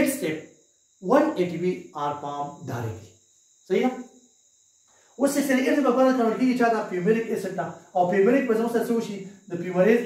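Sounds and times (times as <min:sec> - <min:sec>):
man speaking: 0:00.0 - 0:00.4, 0:01.0 - 0:03.1, 0:03.7 - 0:04.0, 0:05.2 - 0:10.0
faint high-pitched hiss: 0:00.0 - 0:10.0.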